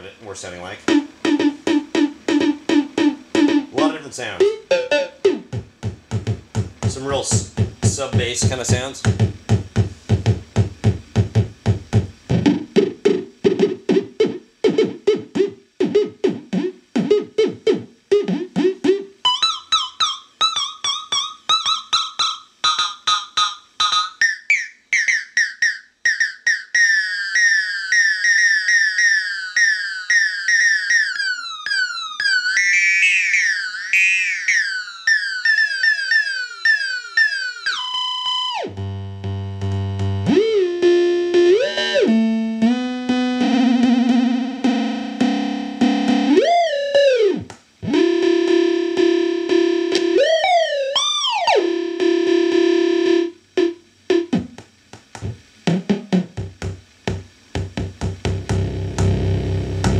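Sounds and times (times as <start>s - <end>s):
warbling synth tone: 0.9s - 5.5s
pitched synth drum hits: 0.9s - 13.8s, 55.2s - 59.9s.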